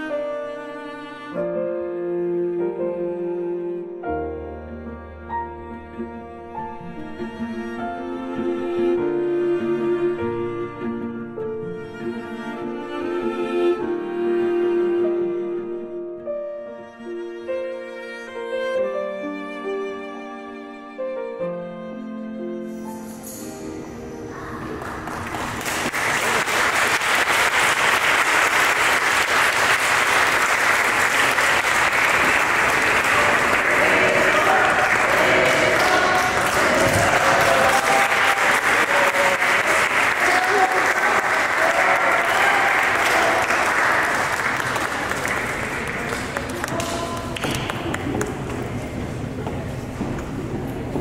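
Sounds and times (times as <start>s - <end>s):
people cheering: 24.3s - 48.2s
crowd applauding: 24.4s - 48.8s.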